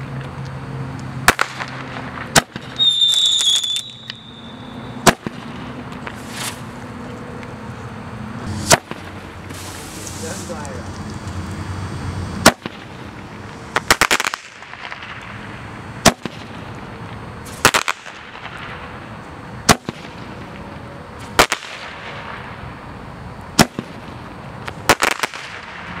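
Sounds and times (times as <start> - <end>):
crackling bangs: 1.2 - 6.9, 8.4 - 11.3, 12.4 - 22.9, 23.5 - 26.0
steady hiss: 8.4 - 26.0.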